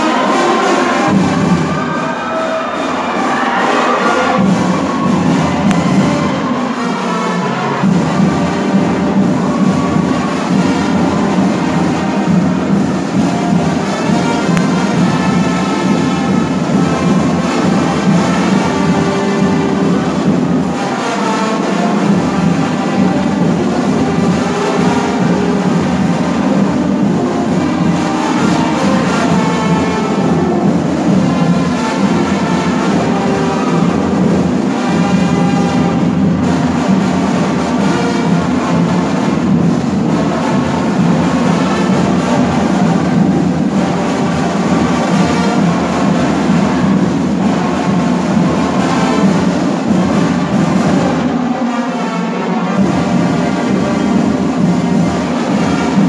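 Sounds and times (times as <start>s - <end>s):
brass melody: 0.0s - 56.0s
marching band drums: 0.0s - 56.0s.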